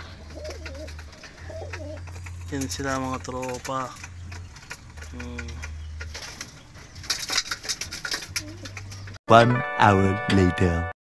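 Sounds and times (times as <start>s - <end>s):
pigeons cooing: 0.0s - 9.2s.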